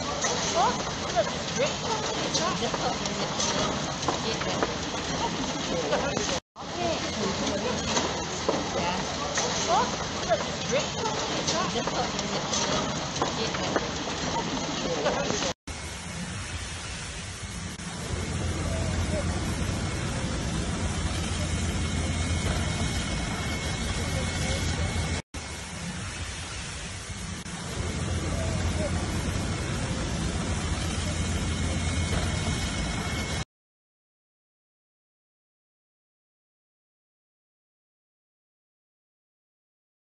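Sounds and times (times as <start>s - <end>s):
fire hoses spraying: 0.0s - 33.4s
low engine drone: 0.0s - 33.4s
street noise: 0.0s - 33.4s.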